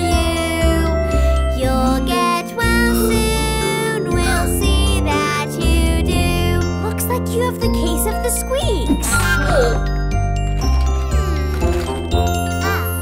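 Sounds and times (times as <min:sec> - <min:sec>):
children's song backing music: 0:00.0 - 0:10.0, 0:10.8 - 0:13.0
child speaking: 0:06.9 - 0:09.8.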